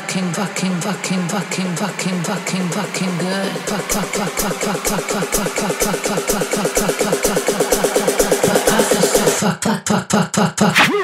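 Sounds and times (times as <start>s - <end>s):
kick drum and hi-hats: 0.0s - 9.4s.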